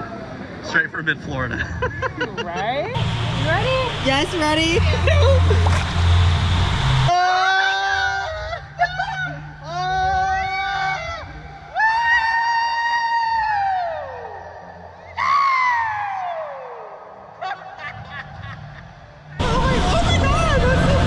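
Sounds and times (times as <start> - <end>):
water rushing and splashing: 3.0 - 7.1
riders screaming and yelling: 7.0 - 17.6.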